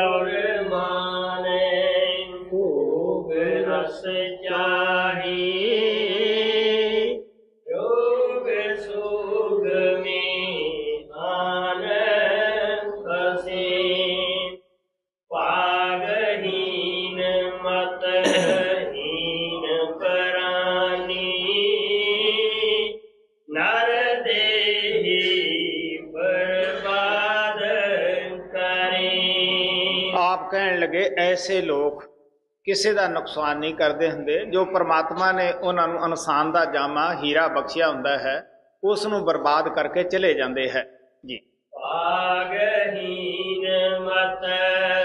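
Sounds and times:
person chanting a hymn: 15.4 - 22.9, 23.5 - 30.4, 41.8 - 45.0.

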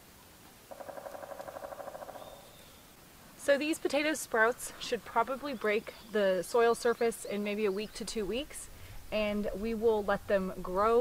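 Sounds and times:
animal buzzy rattle call: 0.7 - 2.2.

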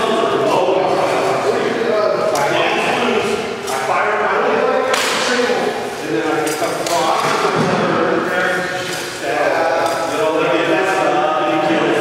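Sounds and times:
people talking in echoing hall: 0.0 - 12.0.

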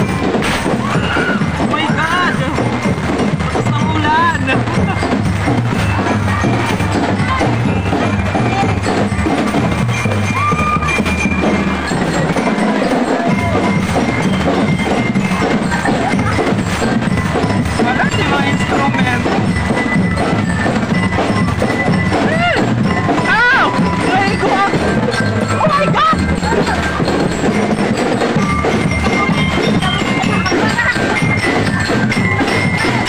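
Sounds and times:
bell lyres ringing melody: 0.0 - 33.0
drums beating: 0.0 - 33.0.

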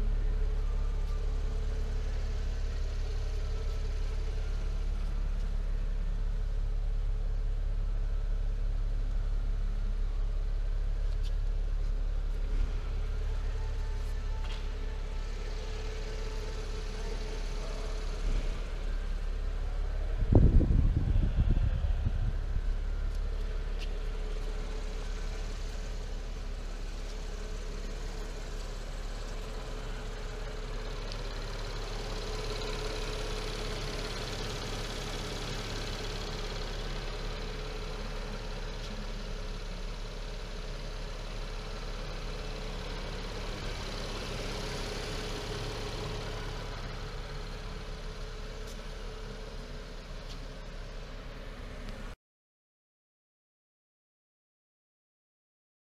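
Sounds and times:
car engine idling: 0.0 - 52.2.

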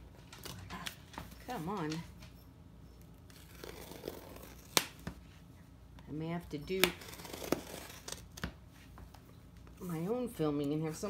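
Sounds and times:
knife scraping packing tape: 3.3 - 4.8, 6.8 - 8.3.

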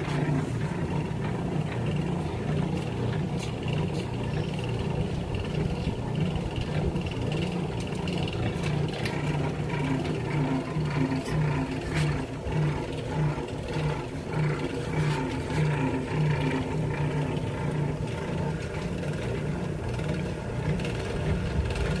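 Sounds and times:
motor humming with throb: 0.0 - 22.0.

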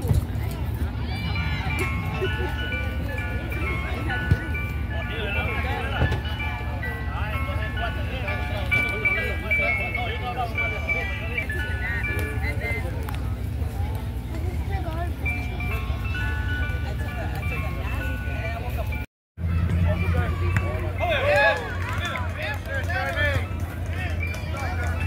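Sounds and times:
ice cream truck chime jingle: 0.4 - 25.0.

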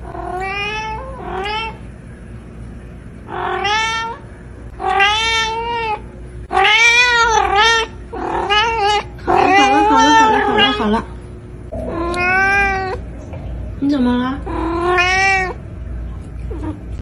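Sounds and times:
cat meowing: 3.3 - 4.2, 4.8 - 11.0, 11.8 - 13.0, 14.5 - 15.6.

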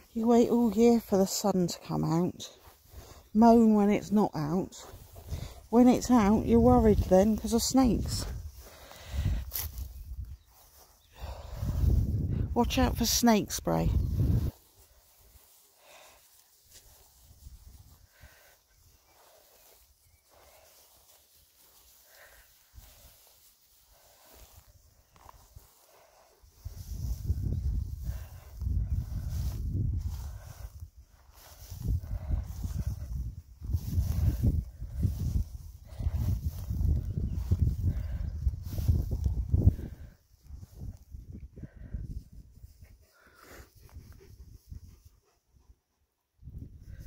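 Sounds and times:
wind buffeting microphone: 4.8 - 13.0, 13.8 - 15.6, 24.2 - 43.0, 46.4 - 47.0.

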